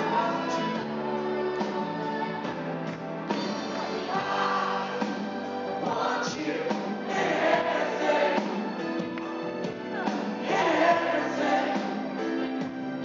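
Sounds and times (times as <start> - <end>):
lead and harmony vocals: 0.0 - 13.0
live pop-rock band: 0.0 - 13.0.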